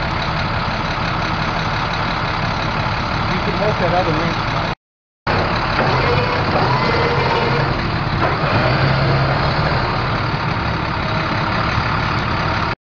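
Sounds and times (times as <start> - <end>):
diesel truck engine running: 0.0 - 12.8.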